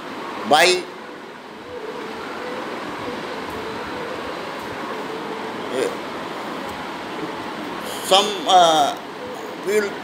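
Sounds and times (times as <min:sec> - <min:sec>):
machinery hum: 0:00.0 - 0:10.0.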